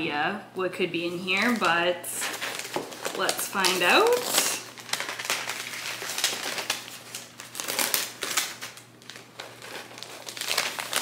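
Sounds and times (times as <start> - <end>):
wrapping paper crinkling: 1.1 - 11.0.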